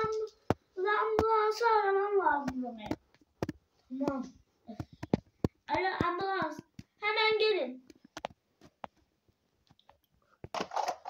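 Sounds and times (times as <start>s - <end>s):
toys rustling: 9.8s - 11.0s
plastic toys clicking: 10.4s - 11.0s.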